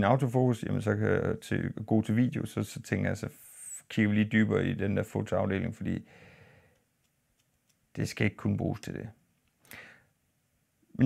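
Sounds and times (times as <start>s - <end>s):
man speaking: 0.0s - 6.0s, 8.0s - 9.2s
man breathing out: 6.0s - 6.8s, 9.6s - 10.1s.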